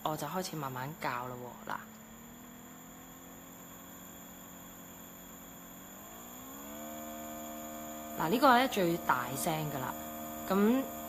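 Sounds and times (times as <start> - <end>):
diffuser humming: 0.0 - 11.0.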